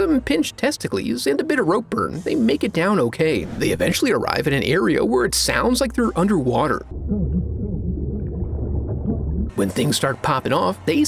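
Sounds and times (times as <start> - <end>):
deep underwater-like rumble: 6.6 - 9.6
warbling moaning tones: 6.8 - 9.6.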